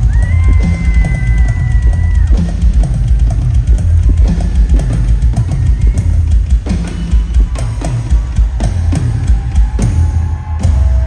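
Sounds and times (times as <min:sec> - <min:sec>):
drum kit solo: 0:00.0 - 0:11.0.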